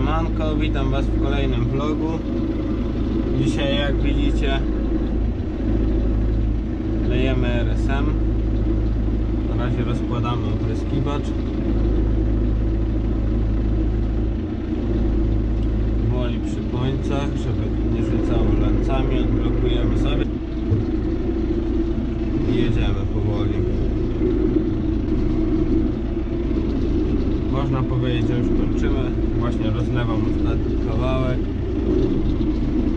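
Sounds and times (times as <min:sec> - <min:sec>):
tractor diesel engine running: 0:00.0 - 0:32.9.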